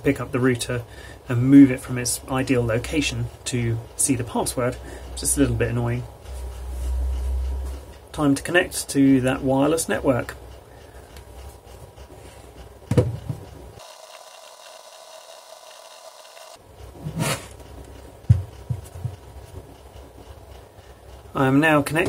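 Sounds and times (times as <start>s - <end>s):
plastic router knocking on desk: 12.9s - 13.4s.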